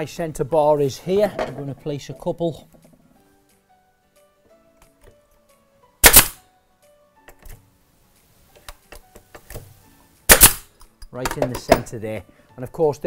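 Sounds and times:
nail gun shots: 0:06.0 - 0:06.4, 0:10.3 - 0:10.7.

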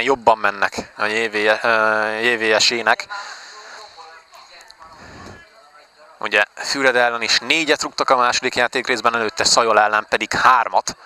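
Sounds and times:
background hiss: 0:00.0 - 0:11.0
distant voices: 0:00.0 - 0:11.0.

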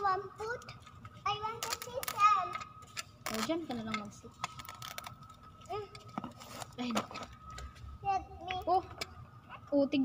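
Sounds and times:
tape and cardboard ripping: 0:03.2 - 0:03.6, 0:04.4 - 0:05.2, 0:06.3 - 0:07.0.

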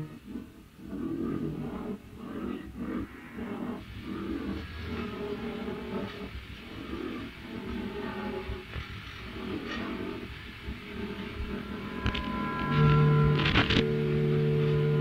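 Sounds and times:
held drone: 0:00.0 - 0:15.0
rough low rumbling texture: 0:00.0 - 0:15.0.

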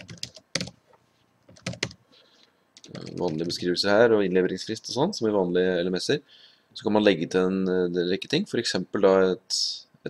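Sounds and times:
typing on computer keyboard: 0:00.0 - 0:00.8, 0:01.5 - 0:02.0, 0:02.8 - 0:03.5.

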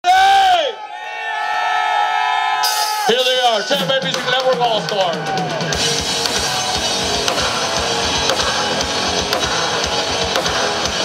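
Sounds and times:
loud shout: 0:00.0 - 0:05.8.

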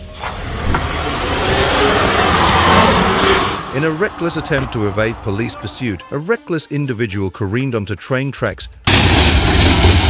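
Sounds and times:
car engine and tyre noise: 0:00.0 - 0:06.0.

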